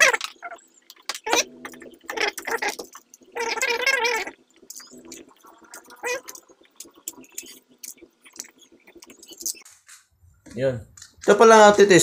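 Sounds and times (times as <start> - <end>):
wavering voiced sound: 1.2 - 9.6.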